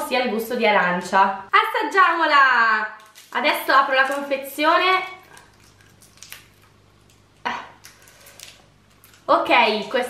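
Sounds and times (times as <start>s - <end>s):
candy wrapper crinkling: 2.9s - 9.9s.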